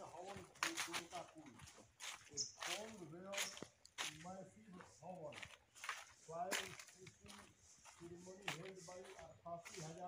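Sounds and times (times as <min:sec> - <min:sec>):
people talking quietly: 0:00.0 - 0:10.0.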